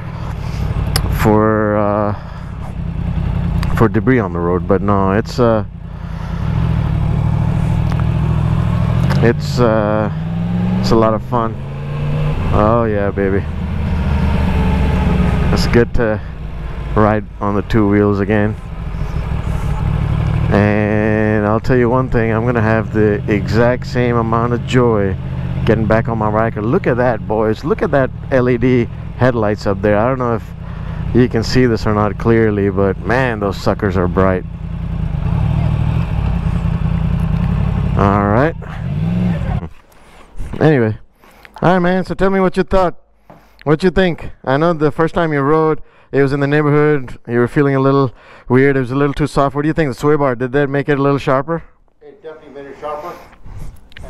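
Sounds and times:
motorcycle engine running: 0:00.0 - 0:39.7.

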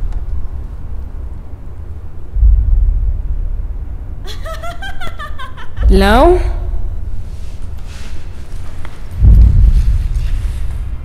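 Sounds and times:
deep low booms: 0:00.0 - 0:04.9, 0:05.7 - 0:07.4, 0:09.2 - 0:11.0
continuous low rumble: 0:00.0 - 0:11.0
person giggling: 0:04.2 - 0:05.9.

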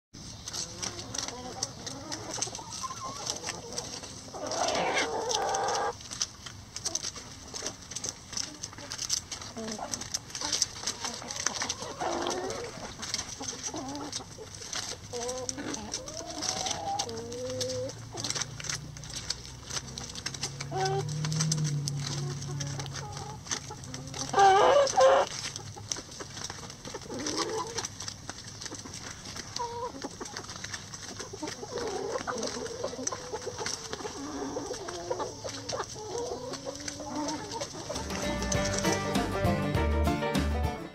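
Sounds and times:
leaves rustling: 0:00.2 - 0:40.6
drawn-out chicken call: 0:00.2 - 0:40.8
hens clucking softly: 0:00.3 - 0:39.4
squawky hen calls: 0:24.2 - 0:25.4.

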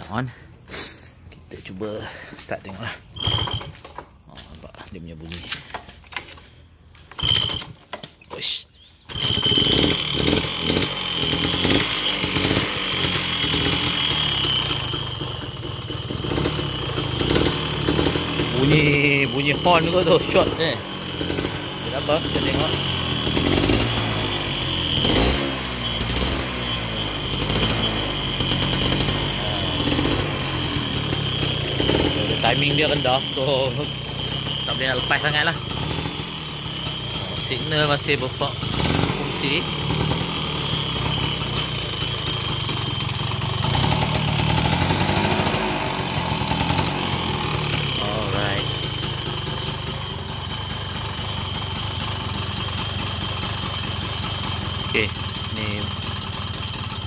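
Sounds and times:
scooter engine burst: 0:02.9 - 0:04.2, 0:07.0 - 0:57.0
high steady whine: 0:17.6 - 0:43.7.

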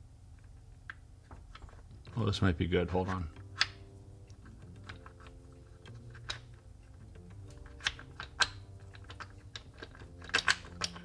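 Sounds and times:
wooden blocks clicking together: 0:02.9 - 0:11.0.

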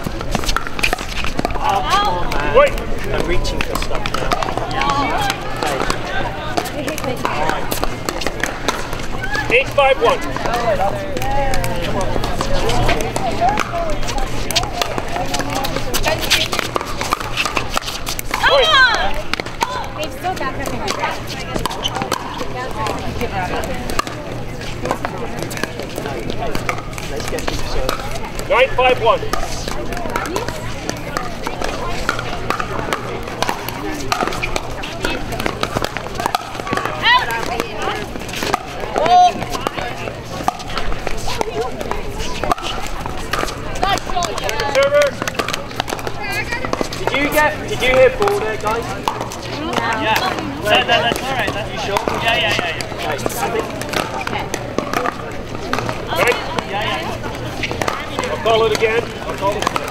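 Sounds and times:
chatter of voices: 0:00.0 - 0:59.9
paddles striking plastic ball: 0:26.5 - 0:57.0, 0:57.6 - 0:59.9.

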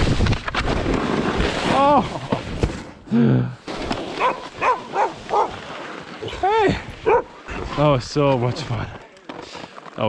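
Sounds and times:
dog barking: 0:04.2 - 0:05.6, 0:07.0 - 0:07.3.

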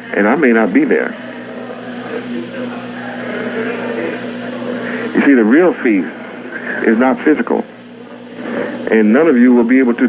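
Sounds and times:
steady low hum with hiss: 0:00.0 - 0:10.0.

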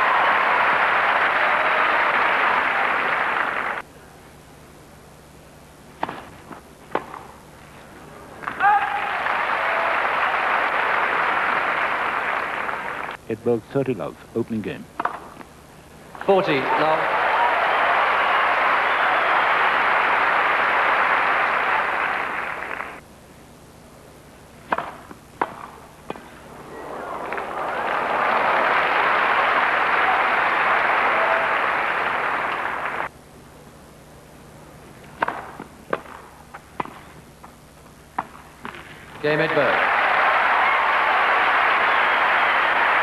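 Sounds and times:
crowd applauding: 0:00.0 - 0:03.8, 0:08.6 - 0:13.2, 0:16.4 - 0:23.0, 0:26.6 - 0:33.1, 0:39.2 - 0:43.0
racket striking tennis ball: 0:06.0 - 0:07.4, 0:24.6 - 0:26.4, 0:35.2 - 0:37.0.

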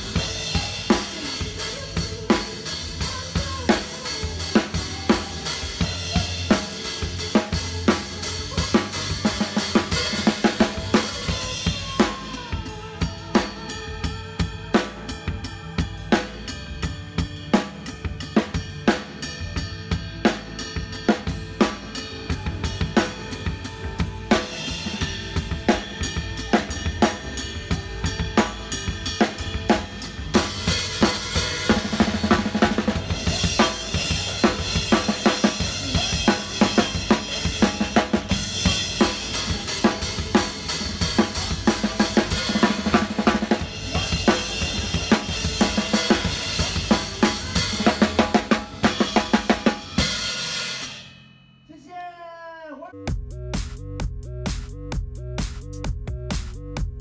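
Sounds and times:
drum kit playing: 0:00.0 - 0:51.9, 0:53.0 - 0:57.0.

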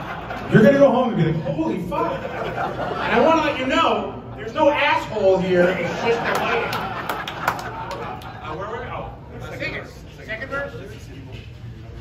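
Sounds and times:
voices talking and laughing: 0:00.0 - 0:11.0.

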